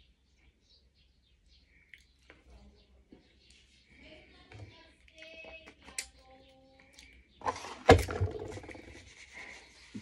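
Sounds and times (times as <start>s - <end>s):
hands rubbing cardboard box: 8.6s - 10.0s.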